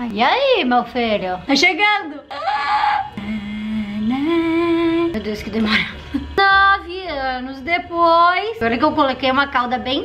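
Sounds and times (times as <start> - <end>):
woman singing wordless notes: 2.2 - 7.0.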